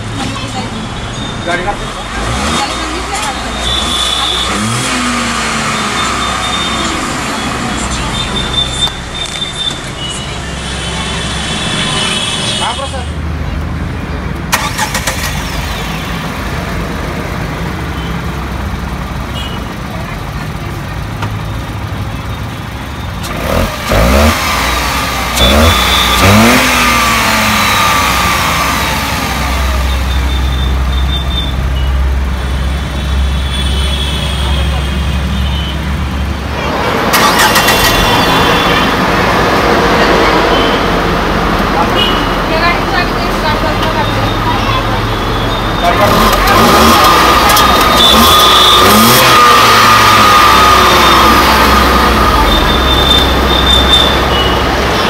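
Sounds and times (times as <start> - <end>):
car engine idling and revving: 0.0 - 11.9, 12.6 - 55.0.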